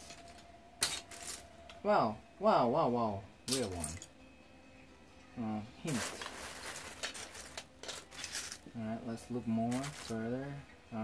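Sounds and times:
plastic bricks clattering: 0:05.9 - 0:08.7, 0:09.7 - 0:10.2.

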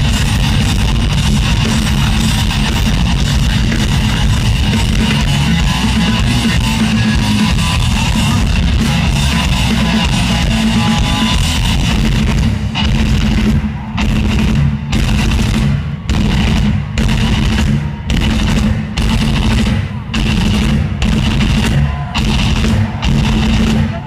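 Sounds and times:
distorted guitars: 0:00.0 - 0:24.0
drums hitting: 0:00.0 - 0:24.0.

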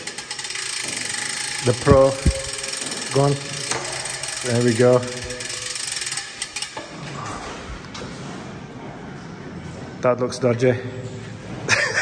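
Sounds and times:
metallic clicks of bicycle parts: 0:00.0 - 0:07.6.

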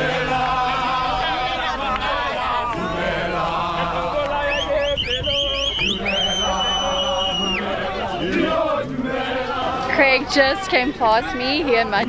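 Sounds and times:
runners singing and chanting: 0:00.0 - 0:12.0.

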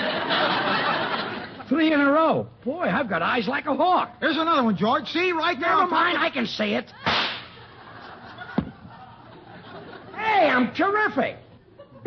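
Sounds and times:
gunshot sound effect: 0:07.1 - 0:07.6.

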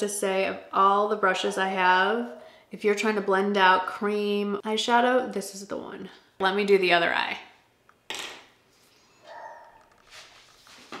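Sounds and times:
soft rustling: 0:08.7 - 0:11.0.

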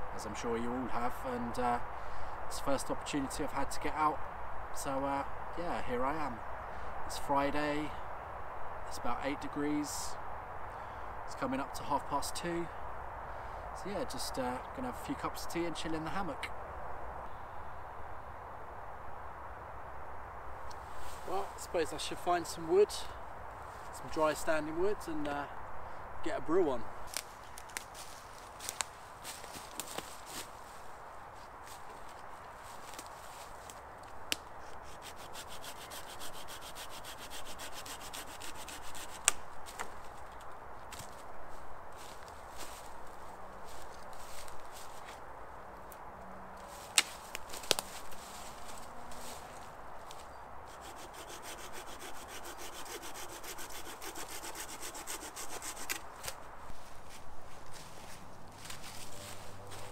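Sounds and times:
wood scraping and rubbing: 0:34.9 - 0:39.9, 0:50.7 - 0:56.4
dry wood snapping: 0:39.1 - 0:41.1, 0:46.9 - 0:47.9.

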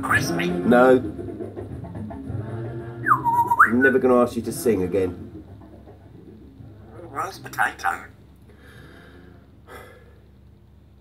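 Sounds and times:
faint breathy hiss: 0:08.4 - 0:10.5.

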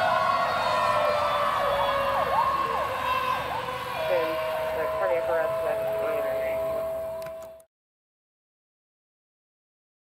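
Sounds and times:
siren sweeping up and down: 0:00.0 - 0:07.7
steady high siren tone: 0:00.0 - 0:07.7.

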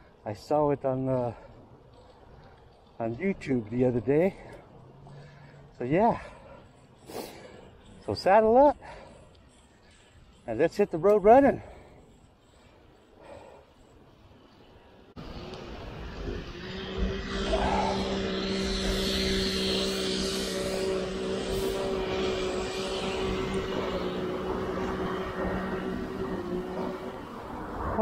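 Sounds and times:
steady engine drone: 0:00.0 - 0:28.0
rushing noise: 0:15.1 - 0:28.0.

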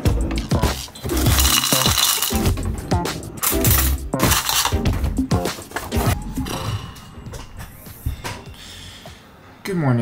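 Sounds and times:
background music: 0:00.0 - 0:10.0
cereal poured into ceramic bowl: 0:01.2 - 0:02.4.

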